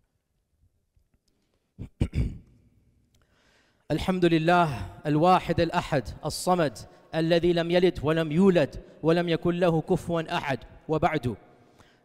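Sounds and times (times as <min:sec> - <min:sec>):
faint breath: 0:03.2 - 0:03.9, 0:11.6 - 0:12.0
man speaking: 0:03.9 - 0:11.4.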